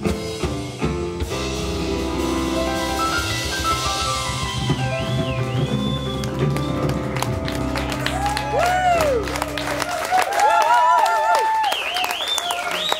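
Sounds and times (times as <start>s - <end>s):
live rock band chord: 0.0s - 8.1s
audience clapping and cheering: 4.5s - 12.9s.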